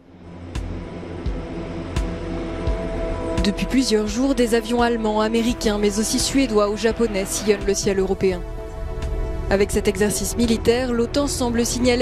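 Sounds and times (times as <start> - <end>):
music with slow beat: 0.0 - 5.0, 5.6 - 9.6
steady drone: 0.0 - 12.0.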